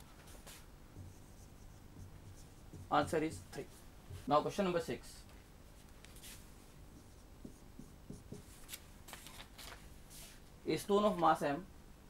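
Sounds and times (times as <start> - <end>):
marker scratching on whiteboard: 0.3 - 4.3, 6.2 - 8.7
man talking: 2.9 - 5.3, 10.7 - 11.7.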